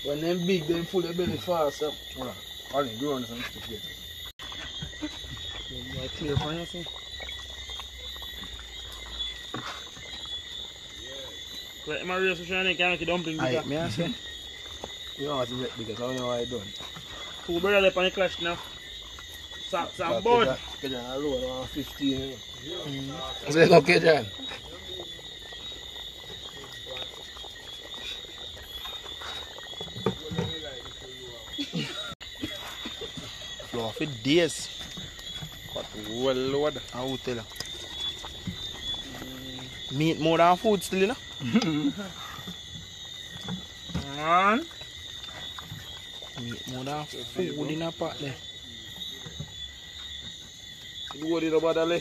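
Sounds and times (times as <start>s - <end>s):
insects and frogs calling: 0.0s - 52.0s
voices talking: 0.0s - 52.0s.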